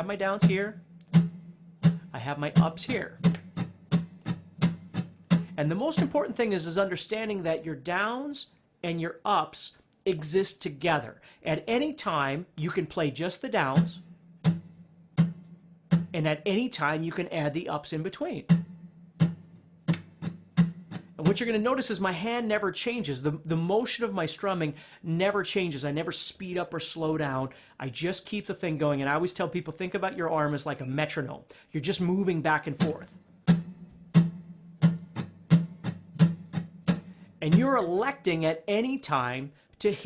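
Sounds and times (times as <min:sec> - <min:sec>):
acoustic guitar down strums: 0:00.0 - 0:06.4, 0:13.7 - 0:16.3, 0:18.4 - 0:21.6, 0:32.5 - 0:38.3.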